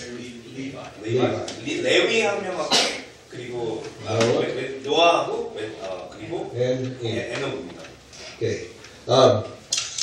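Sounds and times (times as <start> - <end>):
man talking: 0.0 - 9.6.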